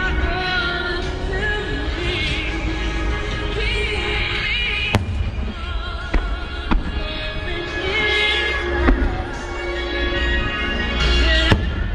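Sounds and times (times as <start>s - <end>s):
music with person singing: 0.0s - 11.9s
fireworks bangs: 4.7s - 9.9s.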